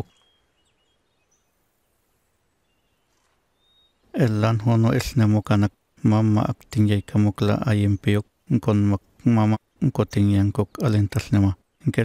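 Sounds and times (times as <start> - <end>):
low background hiss: 0.0 - 12.0
small birds chirping: 0.0 - 12.0.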